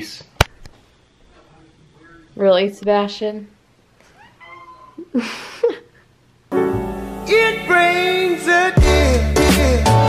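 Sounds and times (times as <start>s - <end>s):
cat meowing: 4.1s - 5.1s.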